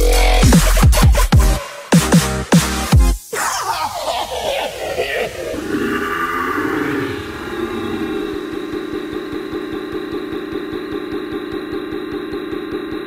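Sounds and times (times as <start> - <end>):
pulsing bass: 5.0 - 13.0
sustained synth chord: 6.0 - 13.0.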